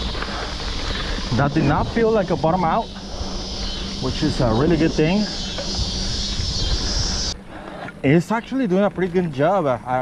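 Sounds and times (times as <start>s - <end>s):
wind on camera: 0.0s - 8.0s
high-pitched buzz: 0.0s - 9.2s
rumble of bike tyres on dirt: 0.0s - 10.0s.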